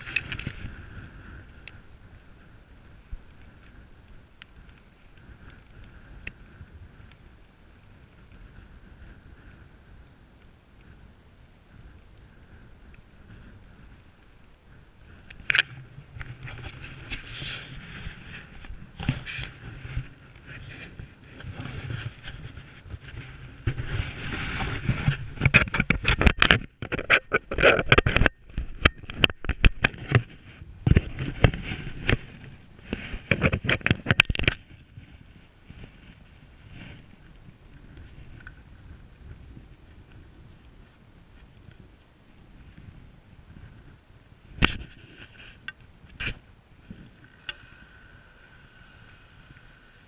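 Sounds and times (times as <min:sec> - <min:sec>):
skis scraping over snow: 0:15.7 - 0:26.1, 0:30.0 - 0:34.1, 0:35.0 - 0:50.0
sharp clicks and knocks: 0:25.0 - 0:30.2.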